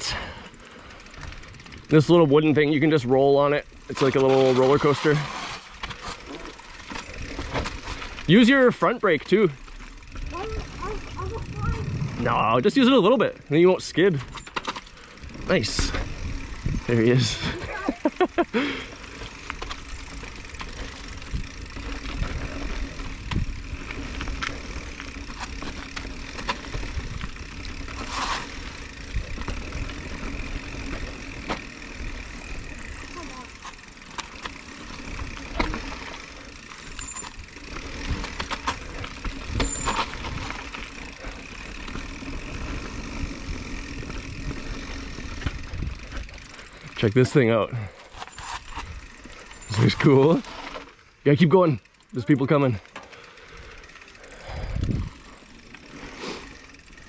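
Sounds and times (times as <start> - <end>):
bike tyres rumbling on dirt: 0.0 - 57.0
wind on microphone: 11.3 - 12.3, 54.6 - 55.2.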